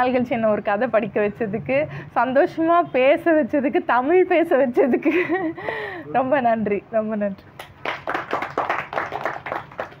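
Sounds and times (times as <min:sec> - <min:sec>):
audience clapping: 0:07.6 - 0:10.0.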